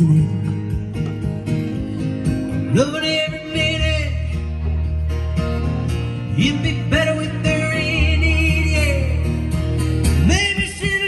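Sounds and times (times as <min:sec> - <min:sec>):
live country band music: 0:00.0 - 0:11.0.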